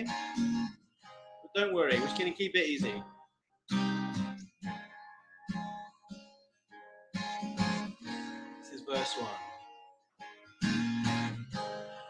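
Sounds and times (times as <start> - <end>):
acoustic guitar strummed slowly: 0.0 - 12.0.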